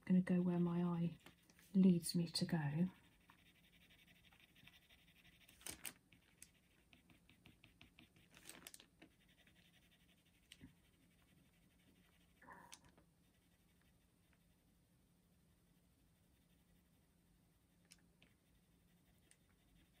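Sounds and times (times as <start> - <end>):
pencil scratching on paper: 0.4 - 14.6, 15.7 - 17.0, 18.1 - 20.0.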